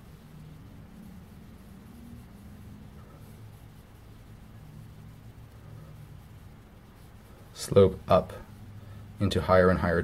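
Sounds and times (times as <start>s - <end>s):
pencil scratching on paper: 0.0s - 8.6s
low background hum: 0.0s - 10.0s.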